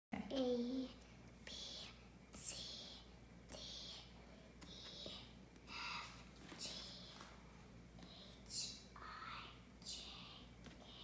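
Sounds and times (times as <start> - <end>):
child whispering: 8.0 - 11.0.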